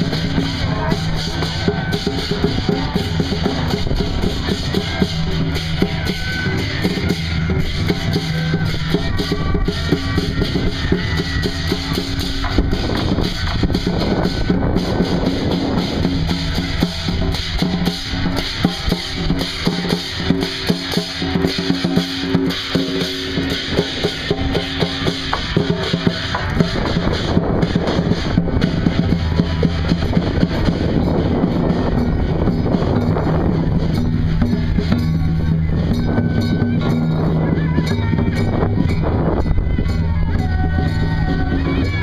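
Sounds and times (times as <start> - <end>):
drum and cymbals beating: 0.0 - 42.0.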